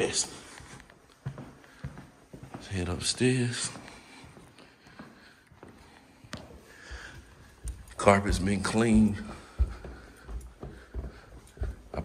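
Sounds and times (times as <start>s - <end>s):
boot footsteps on hardwood floor: 0.0s - 12.0s
footsteps on carpeted stairs: 0.0s - 12.0s.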